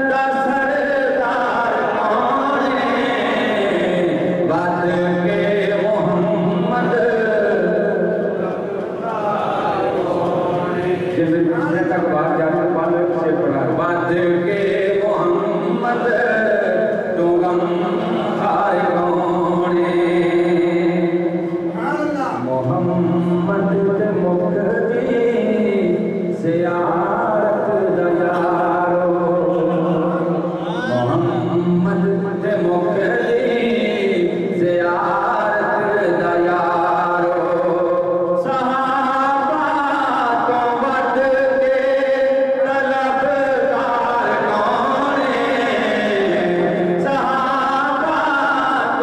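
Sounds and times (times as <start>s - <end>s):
man singing into microphone: 0.0s - 49.0s.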